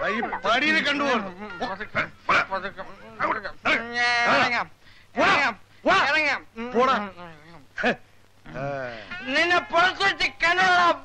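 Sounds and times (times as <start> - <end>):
man yelping: 3.1 - 8.0.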